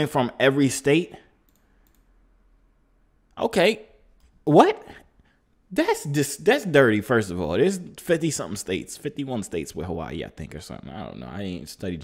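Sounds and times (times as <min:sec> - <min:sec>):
voice: 0:00.0 - 0:01.3, 0:03.4 - 0:03.9, 0:04.5 - 0:05.0, 0:05.7 - 0:12.0
computer mouse clicks: 0:01.4 - 0:02.1.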